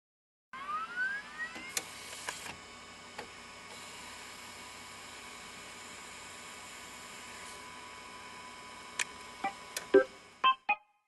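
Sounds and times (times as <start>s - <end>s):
electronic tone sweeping upward: 0.6s - 1.7s.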